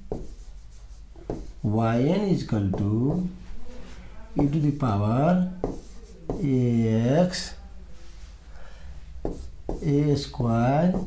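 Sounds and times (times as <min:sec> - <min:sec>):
pen tapping on whiteboard: 0:00.0 - 0:00.5, 0:01.2 - 0:01.6, 0:02.6 - 0:03.3, 0:05.6 - 0:06.6, 0:09.2 - 0:10.0, 0:10.8 - 0:11.0.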